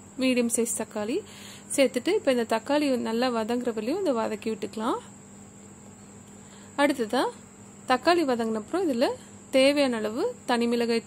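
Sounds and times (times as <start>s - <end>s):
faint high-pitched whine: 0.0s - 11.0s
low background noise: 0.0s - 11.0s
woman speaking: 0.2s - 5.1s, 6.8s - 11.0s.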